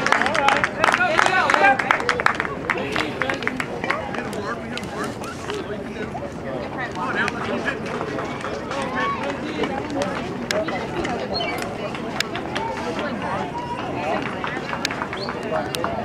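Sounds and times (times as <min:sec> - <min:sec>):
indistinct chatter: 0:00.0 - 0:16.0.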